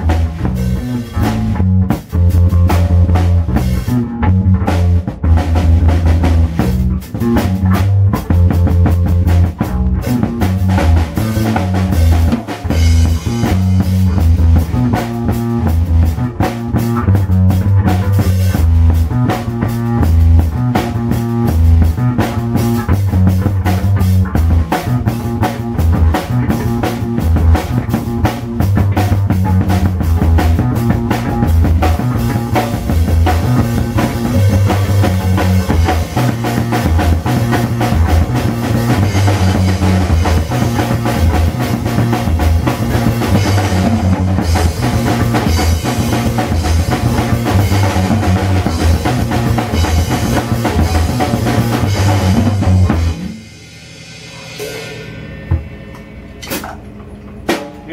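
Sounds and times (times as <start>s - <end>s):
drum kit playing: 0.0s - 57.9s
electric bass line: 0.0s - 57.9s.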